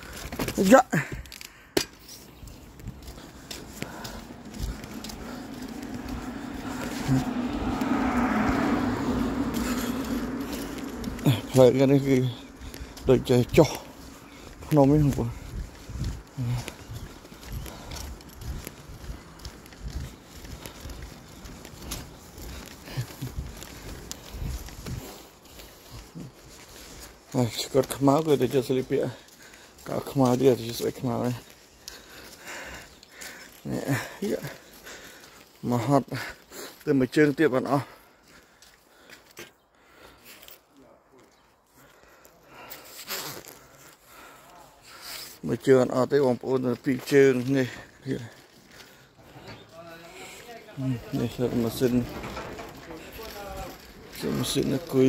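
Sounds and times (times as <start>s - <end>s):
hand truck wheels rattling on asphalt: 0.0s - 38.0s, 45.6s - 55.0s
footsteps: 0.0s - 55.0s.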